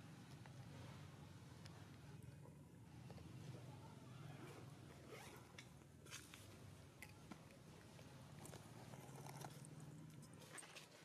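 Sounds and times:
faint scratchy rustles: 8.4 - 11.0.

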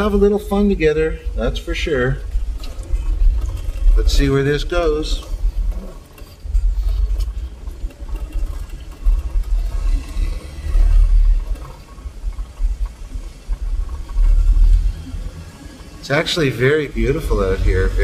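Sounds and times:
vehicle driving low rumble: 0.0 - 18.0.

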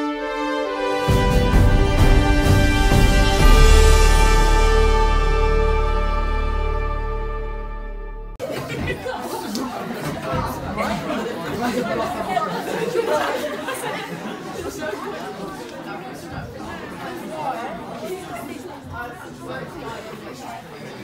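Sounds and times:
indistinct group chatter: 8.4 - 21.0.

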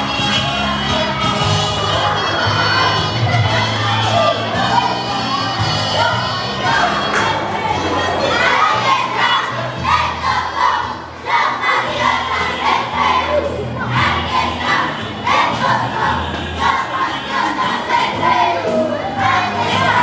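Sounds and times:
children chanting in unison: 0.6 - 20.0.

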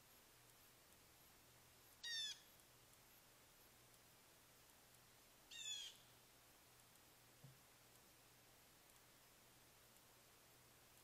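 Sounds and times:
blue jay call: 2.0 - 2.5, 5.5 - 6.1.

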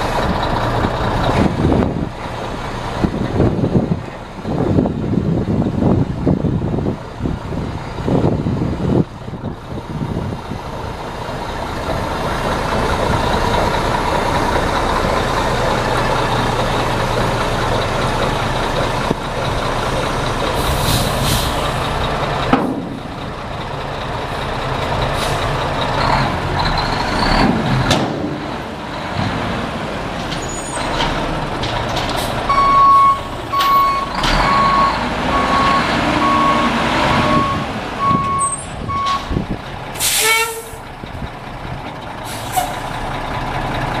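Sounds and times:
diesel truck engine running: 0.0 - 44.0.

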